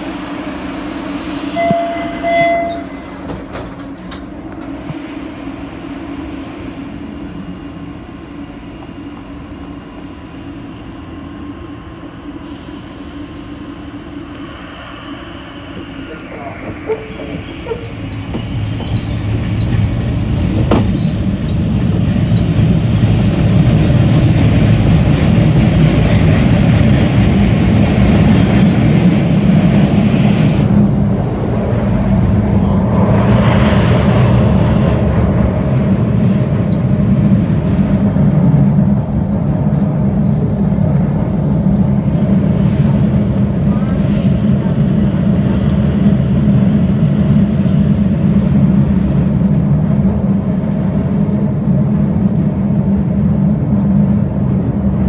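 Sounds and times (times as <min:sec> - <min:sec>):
subway car rumbling in tunnel: 0:00.0 - 0:55.0.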